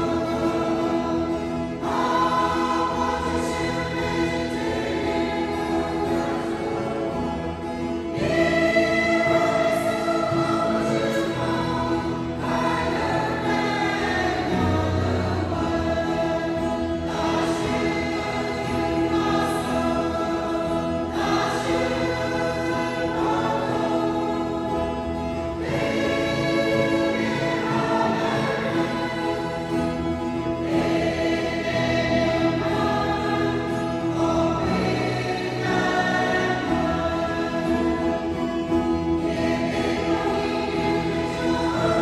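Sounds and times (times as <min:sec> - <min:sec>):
mixed choir singing a hymn: 0:00.0 - 0:42.0.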